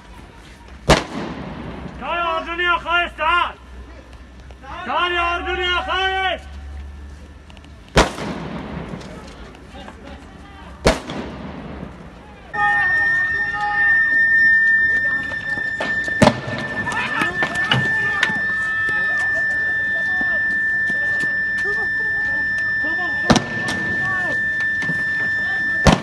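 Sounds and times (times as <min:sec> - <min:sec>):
gunshots with echo: 0:10.8 - 0:12.0
people shouting: 0:12.4 - 0:26.0
steady high tone: 0:12.5 - 0:26.0.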